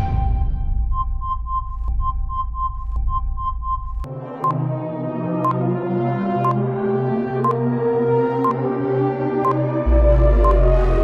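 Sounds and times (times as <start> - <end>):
countdown timer beeps: 0.4 - 4.7, 5.4 - 5.7, 6.4 - 6.6, 8.4 - 8.7, 9.4 - 11.0
rapid electronic beeping: 0.7 - 4.6, 9.5 - 11.0
synthesizer music: 4.0 - 11.0
low electronic drone: 8.6 - 11.0.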